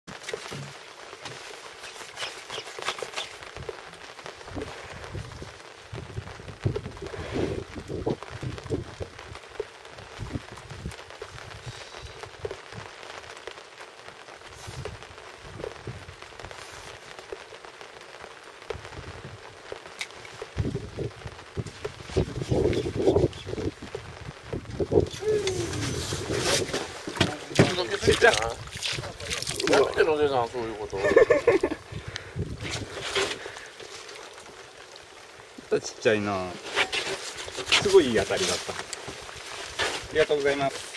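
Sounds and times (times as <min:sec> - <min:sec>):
light rain pattering on a boat: 0:00.0 - 0:40.9.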